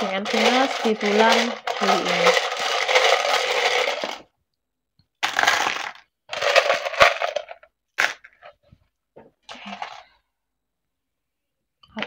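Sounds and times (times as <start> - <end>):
plastic letters clattering into tray: 0.0 - 4.3, 5.2 - 8.5
plastic letters rattling in tub: 0.0 - 4.3, 5.2 - 8.6.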